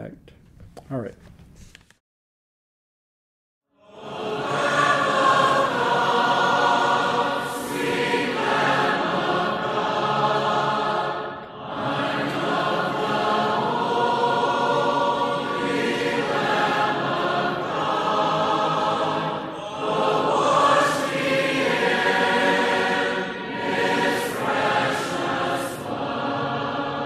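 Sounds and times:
choir singing a cappella: 3.7s - 27.0s.

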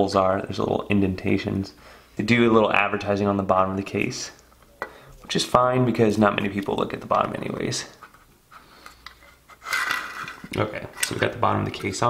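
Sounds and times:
case scraping on table: 9.3s - 10.6s.

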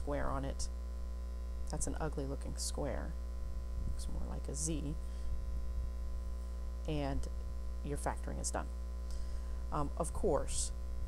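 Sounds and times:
person speaking: 0.0s - 0.6s, 1.7s - 3.1s, 4.0s - 5.0s, 6.9s - 7.3s, 7.9s - 8.6s, 9.7s - 10.7s
low electrical hum: 0.0s - 11.0s.

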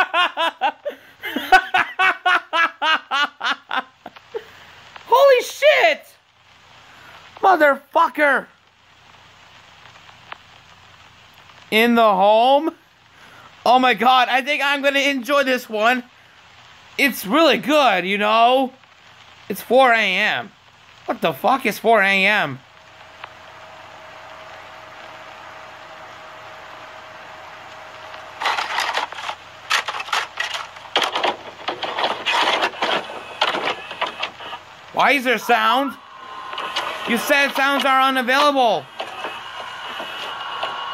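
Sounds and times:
faint hum: 0.0s - 13.7s, 18.6s - 40.9s
crackling and rattling noise bursts: 0.0s - 40.9s
faint background hiss: 0.0s - 40.9s.

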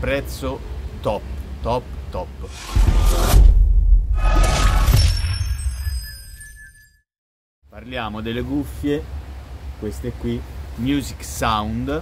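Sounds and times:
deep crashing burst: 2.5s - 5.0s
high ringing tones: 4.6s - 7.1s.

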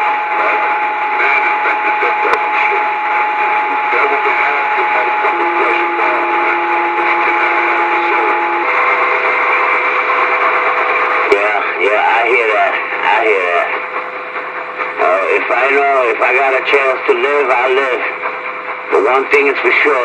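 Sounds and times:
distorted warbling voices: 0.0s - 20.0s
radio static hiss: 0.0s - 20.0s.

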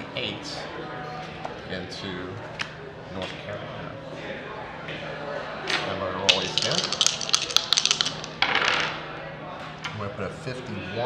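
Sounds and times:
dice scraping: 6.3s - 8.9s
dice clattering on wooden table: 6.3s - 9.0s.

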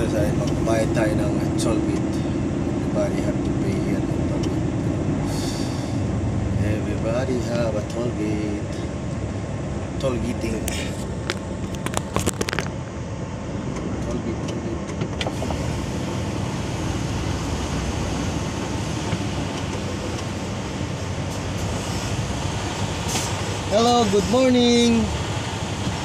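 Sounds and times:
truck engine rumble: 0.0s - 26.0s.

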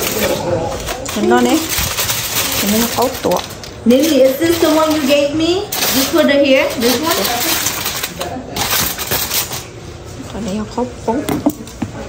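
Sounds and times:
aluminium foil crinkling: 0.0s - 9.8s.

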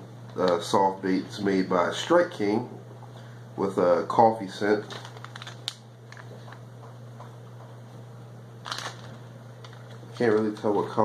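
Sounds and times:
plastic rustle: 4.8s - 6.5s, 8.6s - 10.9s
plastic package crinkling: 4.8s - 6.6s, 8.6s - 11.0s.

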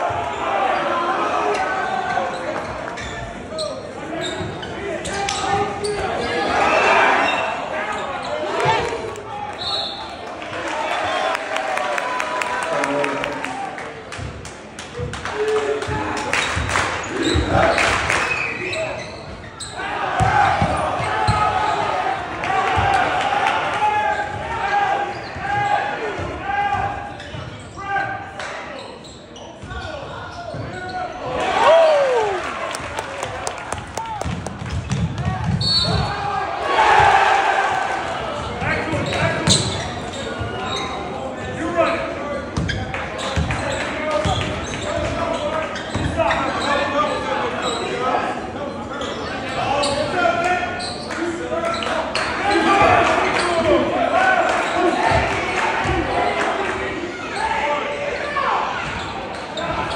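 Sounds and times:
players and spectators chattering: 0.0s - 59.9s.

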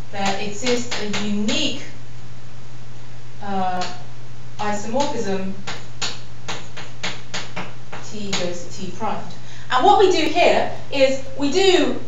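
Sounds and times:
steady low hum: 0.0s - 12.0s
chalk tapping on a blackboard: 5.0s - 8.5s.

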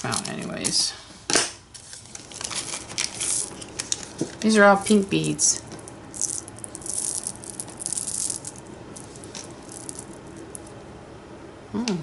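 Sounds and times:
beads rattling in hands: 2.3s - 4.1s, 4.8s - 10.7s.

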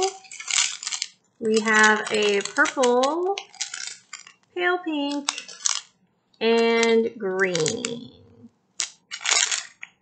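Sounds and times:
plastic packets crinkling: 0.0s - 6.0s, 6.6s - 8.1s, 8.8s - 10.0s.

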